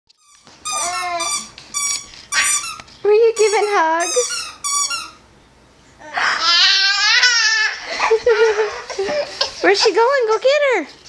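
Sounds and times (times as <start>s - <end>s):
puppy whining: 0.3s - 5.2s, 6.0s - 9.1s.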